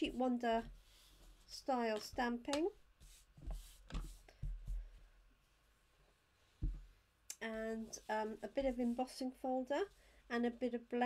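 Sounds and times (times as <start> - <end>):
soft knocks on table: 6.6 - 6.9.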